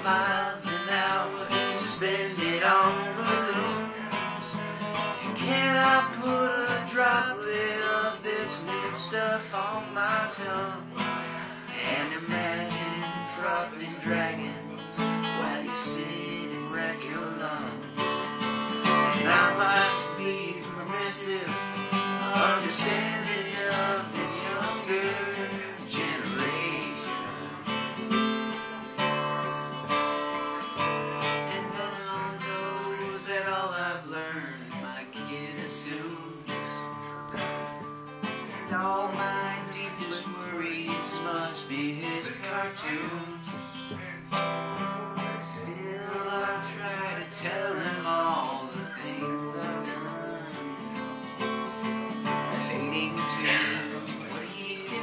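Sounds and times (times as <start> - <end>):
acoustic guitar strummed and picked: 0.0 - 55.0.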